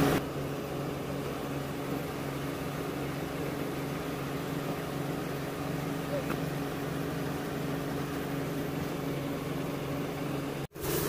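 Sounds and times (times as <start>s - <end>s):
machine humming: 0.0s - 11.0s.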